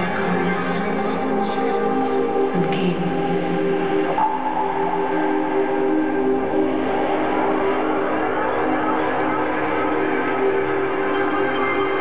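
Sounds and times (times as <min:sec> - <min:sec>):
held synthesizer chords: 0:00.0 - 0:12.0.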